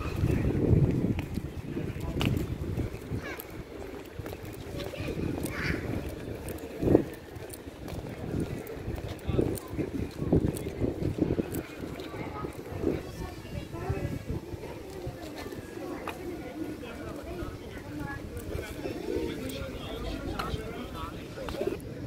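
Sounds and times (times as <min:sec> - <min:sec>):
people talking indistinctly: 0:00.0 - 0:22.0
wind gusting on microphone: 0:00.0 - 0:22.0.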